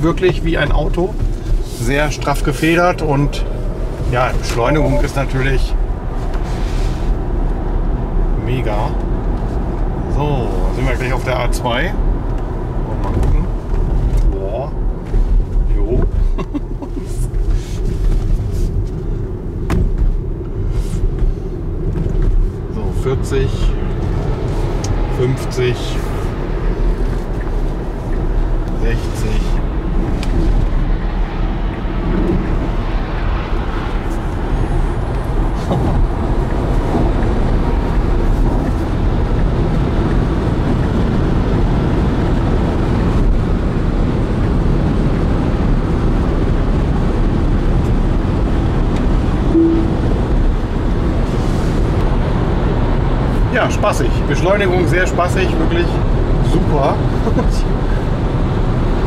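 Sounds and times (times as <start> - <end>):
road and wind noise rumble: 0.0 - 59.0
car knocks and bumps: 19.6 - 20.4.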